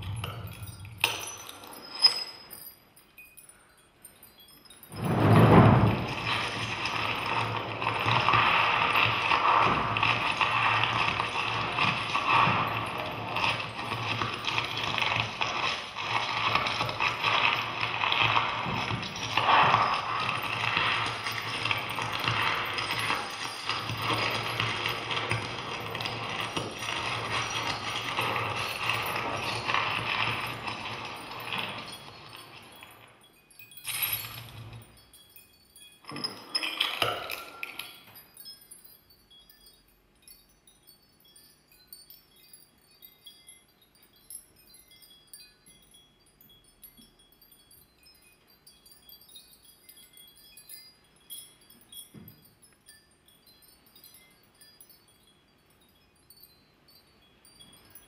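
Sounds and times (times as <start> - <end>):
dense continuous noise: 0.0 - 58.0.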